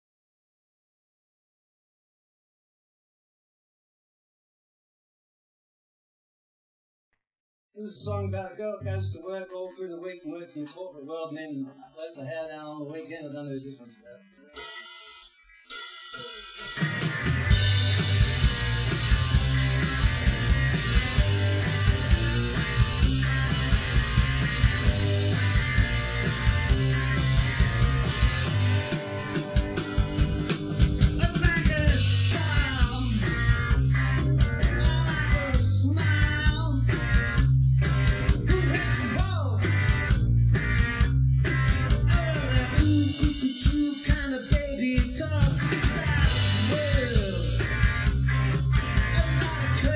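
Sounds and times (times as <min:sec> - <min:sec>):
electric guitar: 0:14.3 - 0:49.9
live rock band playing: 0:14.6 - 0:49.9
heavy bass line: 0:16.2 - 0:43.6, 0:45.0 - 0:49.9.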